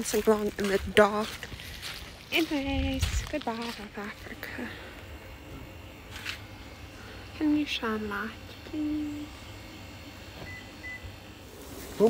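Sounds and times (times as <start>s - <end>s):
faint high beeps: 10.4s - 11.1s.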